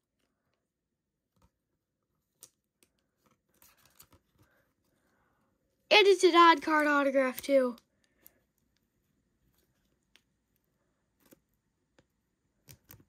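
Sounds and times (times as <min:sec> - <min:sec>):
trading card clicks and rustles: 0:01.3 - 0:04.9, 0:12.6 - 0:13.0.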